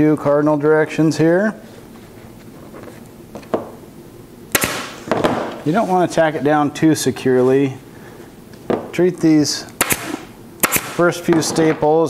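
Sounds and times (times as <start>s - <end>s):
staple gun firing: 4.5s - 4.9s, 9.8s - 11.0s.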